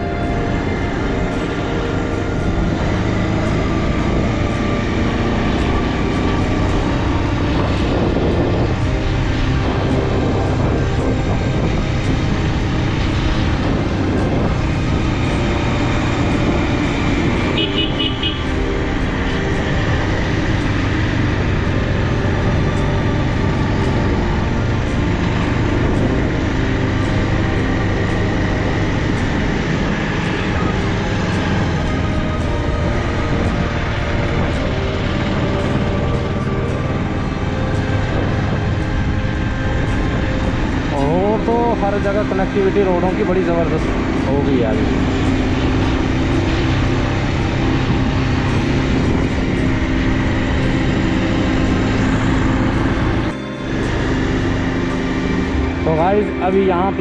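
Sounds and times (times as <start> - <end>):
motorcycle engine running: 0.0 - 57.0
road and air noise: 0.0 - 57.0.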